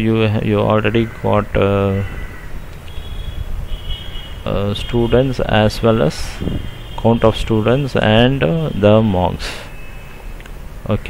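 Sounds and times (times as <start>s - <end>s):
low rumble with hiss: 0.0s - 9.8s, 10.4s - 11.0s
faint high steady tone: 0.6s - 11.0s.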